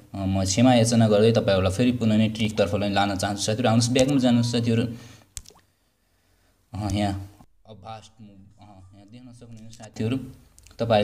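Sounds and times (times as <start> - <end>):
man speaking: 0.2 - 5.0, 6.7 - 11.0.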